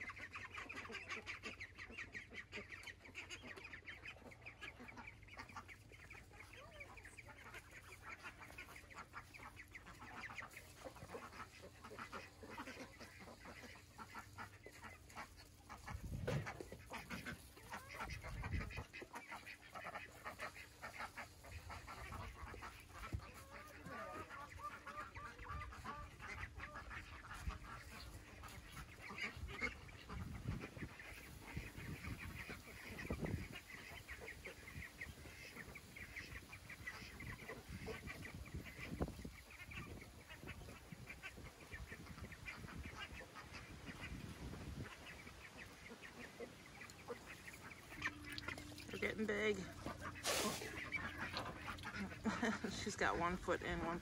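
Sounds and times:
ducklings calling: 0.0 - 54.0.

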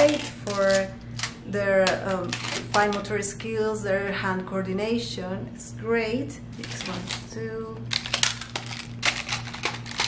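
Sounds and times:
plastic tiles clacking: 0.0 - 3.1, 7.9 - 10.0.

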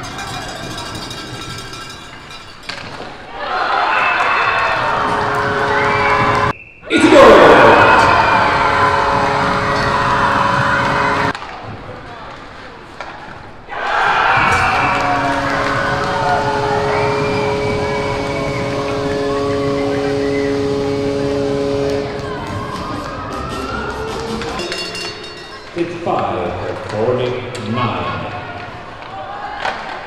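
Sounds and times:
amplified arena sound: 0.0 - 12.8, 13.6 - 29.4
crowd cheering: 3.1 - 12.4, 13.6 - 30.0
steady multi-note tone: 4.7 - 6.5, 8.0 - 11.3, 14.6 - 26.4.

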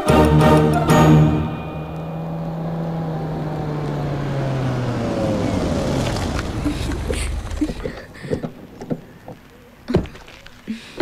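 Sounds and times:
music cue: 0.0 - 4.7
car engine humming: 0.0 - 9.8.

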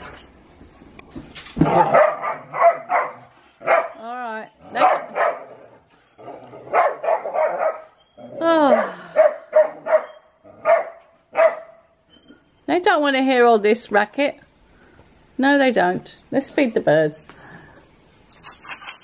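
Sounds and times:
dogs barking: 1.6 - 4.0, 4.7 - 5.8, 6.6 - 8.0, 8.7 - 12.0
dog whining: 5.9 - 11.0.

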